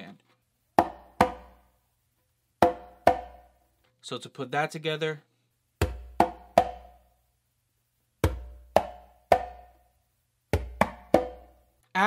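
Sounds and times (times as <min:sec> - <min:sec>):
conga drum strokes: 0:00.8 - 0:01.6, 0:02.6 - 0:03.5, 0:05.8 - 0:07.0, 0:08.2 - 0:09.8, 0:10.5 - 0:11.6.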